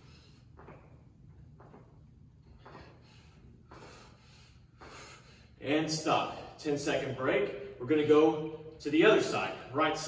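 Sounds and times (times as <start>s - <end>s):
man breathing quickly: 0.0s - 6.7s
low room hum: 0.0s - 10.0s.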